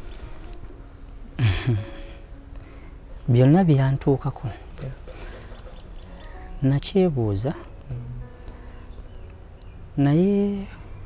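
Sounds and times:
insect chirping: 0:05.1 - 0:06.5.

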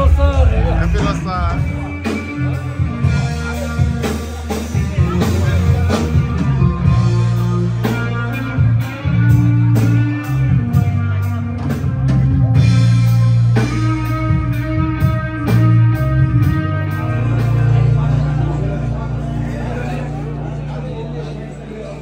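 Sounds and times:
drum kit beat with cymbals: 0:00.0 - 0:19.0
bass guitar low notes: 0:00.0 - 0:22.0
guitar: 0:00.0 - 0:22.0.

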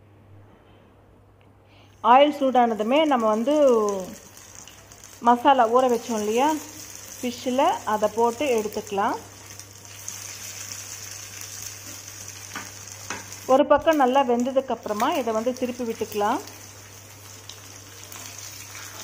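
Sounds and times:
fish sizzling in hot oil: 0:02.6 - 0:19.0.

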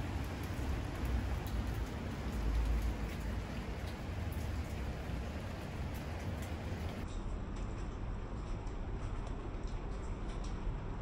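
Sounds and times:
rain pattering: 0:00.0 - 0:11.0.

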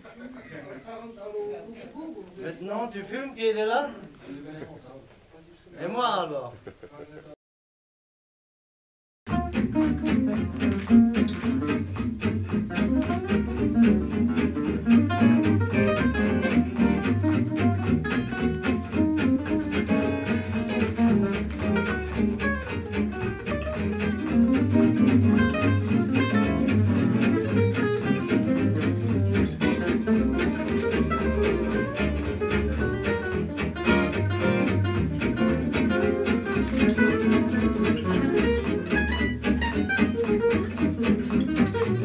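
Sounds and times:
picked acoustic guitar lead: 0:09.3 - 0:42.0
strummed rhythm guitar: 0:09.3 - 0:42.0
walking bass line: 0:09.3 - 0:42.0.

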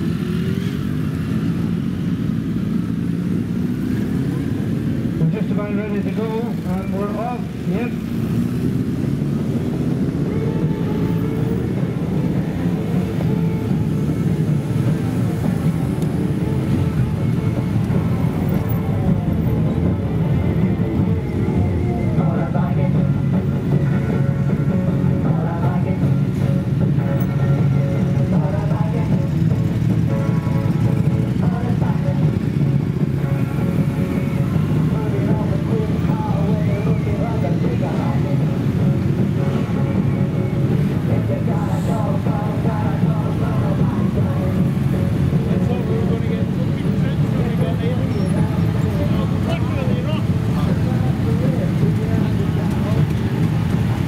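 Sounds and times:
motorcycle engines at low revs: 0:00.0 - 0:54.0.

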